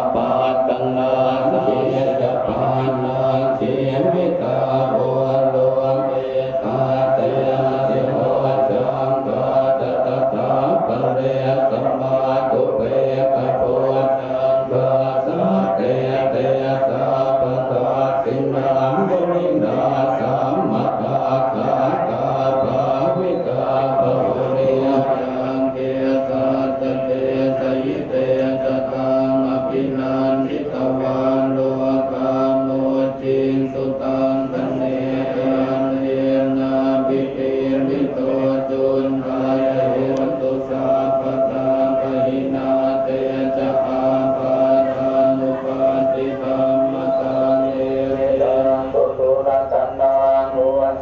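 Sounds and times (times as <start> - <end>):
monks chanting in unison: 0.0 - 51.0.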